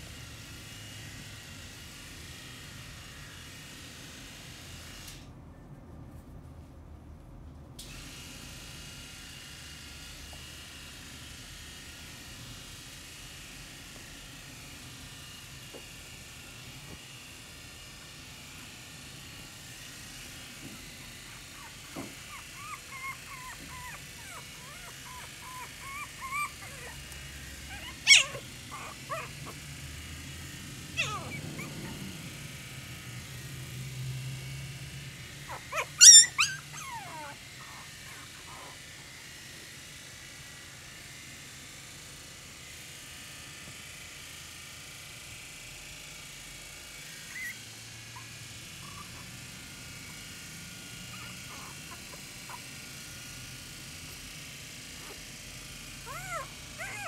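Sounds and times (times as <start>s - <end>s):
puppies whimpering in high squeaks: 21.4s - 27.0s, 27.7s - 29.4s, 31.0s - 32.0s, 35.5s - 38.7s, 47.3s - 47.6s, 51.1s - 52.7s, 56.0s - 57.0s
puppy yipping sharply: 21.6s - 27.0s, 27.7s - 29.6s, 31.0s - 32.0s, 35.5s - 38.7s, 47.3s - 47.6s, 51.1s - 52.6s, 56.0s - 57.0s.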